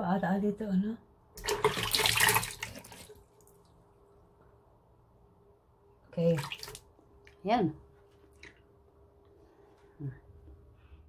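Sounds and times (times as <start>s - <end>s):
water splashing at sink: 1.4s - 3.8s, 6.2s - 7.0s.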